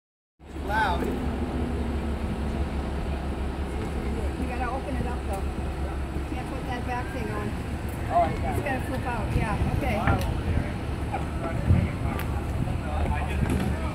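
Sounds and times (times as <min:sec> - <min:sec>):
truck engine rumbling: 0:00.4 - 0:13.9
faint voices talking: 0:02.6 - 0:13.9.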